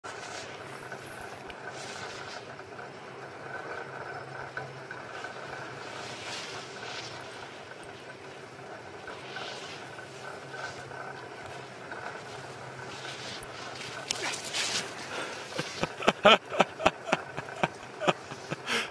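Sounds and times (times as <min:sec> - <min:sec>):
skis swishing on snow: 0:00.1 - 0:02.6, 0:05.1 - 0:18.9
steady background hiss: 0:00.1 - 0:18.9.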